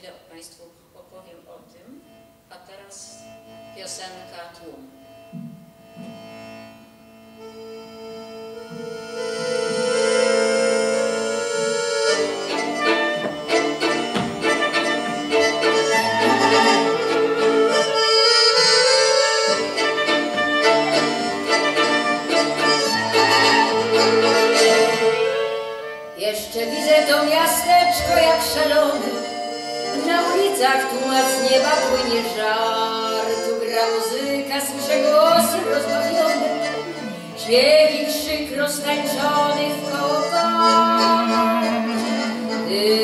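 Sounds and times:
accordion and violin waltz: 2.0s - 43.0s.

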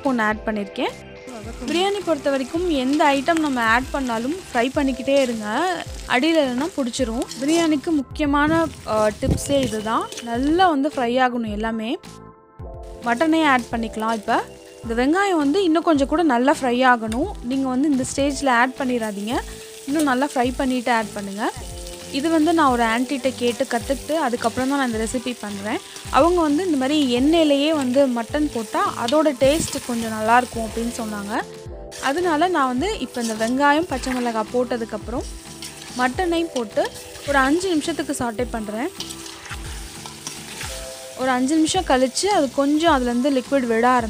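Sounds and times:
onions sizzling in oil: 0.0s - 11.1s, 12.8s - 44.0s
woman talking: 0.0s - 12.0s, 13.1s - 21.5s, 22.2s - 35.3s, 36.0s - 38.9s, 41.2s - 44.0s
background music with low beat: 0.3s - 19.1s, 21.6s - 44.0s
metal spoon stirring in metal bowl: 6.6s - 7.9s, 9.6s - 10.6s, 22.3s - 31.3s, 31.9s - 34.5s, 35.3s - 41.0s.

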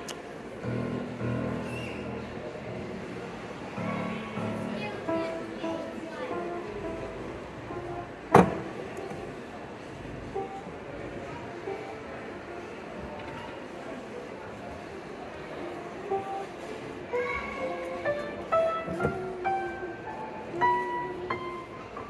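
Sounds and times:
busy museum hall background: 0.0s - 22.0s
upright piano notes: 0.5s - 13.8s, 14.8s - 22.0s.

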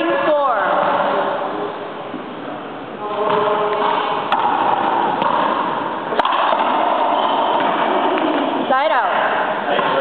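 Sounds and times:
racquetball cracks: 3.3s - 9.6s.

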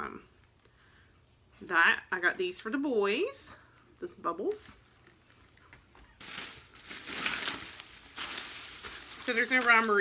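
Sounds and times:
plastic bag rustling: 6.0s - 10.0s.

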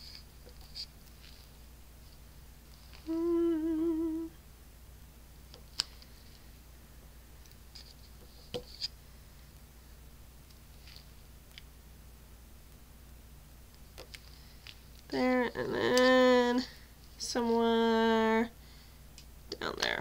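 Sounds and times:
woman humming: 3.0s - 4.4s.

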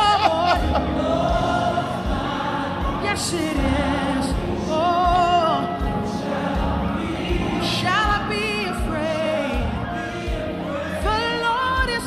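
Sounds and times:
band playing: 0.0s - 12.0s
choir singing: 0.0s - 12.0s.

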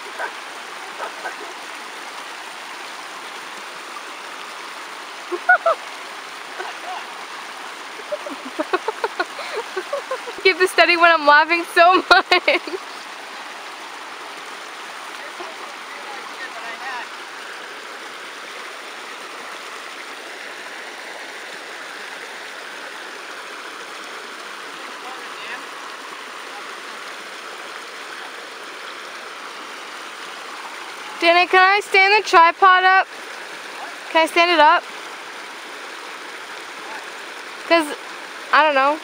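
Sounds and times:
creek water rushing over rocks: 0.0s - 39.0s.

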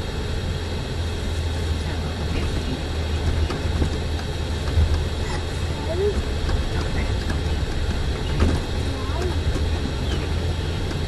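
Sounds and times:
bus engine and tyres rumbling: 0.0s - 11.0s
faint voices murmuring: 5.1s - 11.0s.

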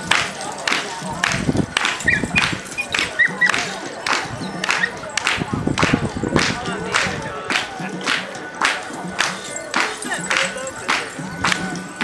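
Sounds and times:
drum-driven dance music: 0.0s - 12.0s.

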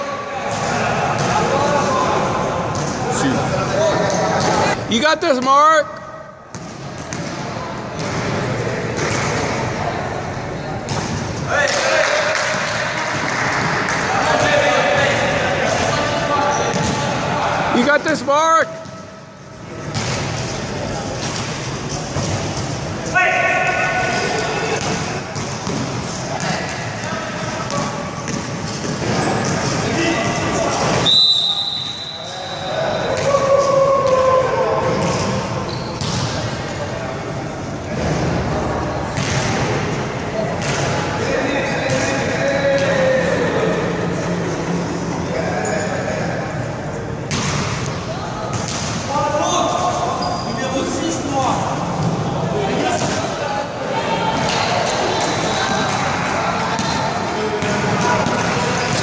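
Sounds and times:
voices and shouts in hall: 0.0s - 6.5s, 7.4s - 59.0s.

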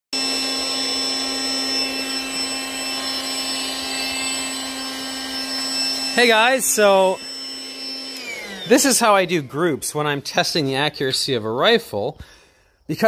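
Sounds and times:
air pump whining: 0.1s - 10.0s.

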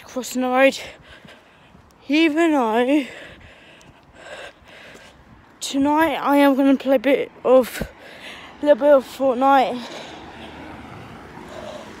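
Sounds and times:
distant road traffic: 0.0s - 12.0s
low street hum: 0.0s - 12.0s.

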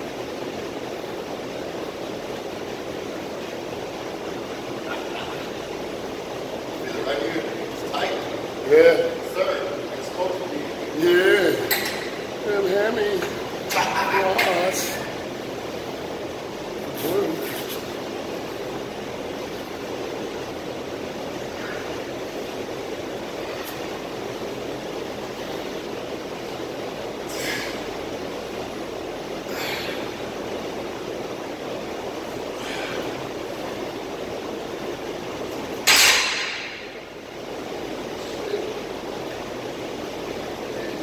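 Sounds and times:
room noise: 0.0s - 41.0s
man breathing forcefully: 27.2s - 28.0s, 29.4s - 30.2s, 32.5s - 33.3s.

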